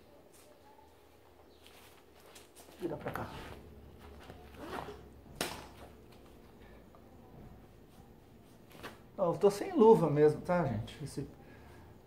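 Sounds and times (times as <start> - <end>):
rustling handling sounds: 0.2 - 5.0.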